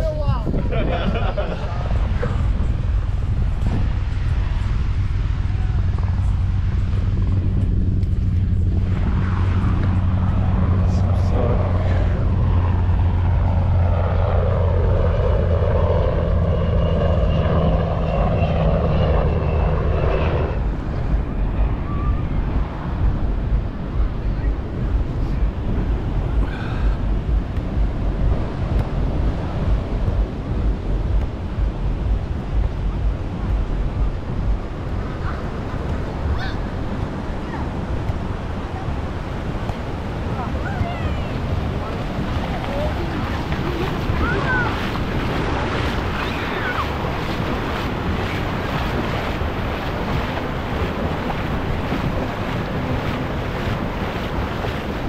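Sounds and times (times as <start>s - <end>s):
propeller airplane droning: 0.0s - 55.0s
surf: 0.0s - 55.0s
wind: 0.0s - 55.0s.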